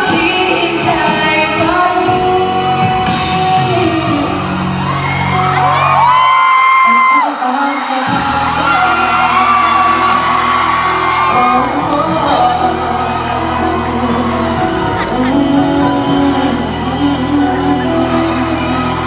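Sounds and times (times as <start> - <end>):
man singing into a microphone: 0.0 - 5.0, 6.8 - 19.0
backing music: 0.0 - 19.0
audience whooping: 3.6 - 19.0.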